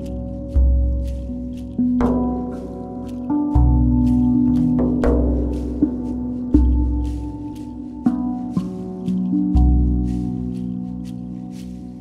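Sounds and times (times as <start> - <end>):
steel tongue drum notes ringing: 0.0 - 12.0.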